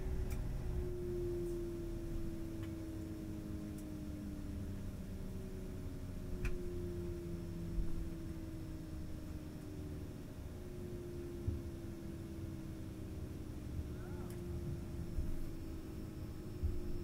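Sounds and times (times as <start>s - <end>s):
low rumble: 0.0s - 2.5s
faint steady hum: 0.0s - 17.0s
jet engine whine winding down: 0.0s - 17.0s.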